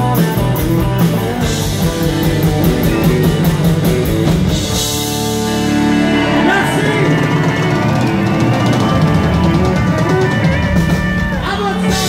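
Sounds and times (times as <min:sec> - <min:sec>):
drums and cymbals: 0:00.0 - 0:12.0
live country band playing: 0:00.0 - 0:12.0.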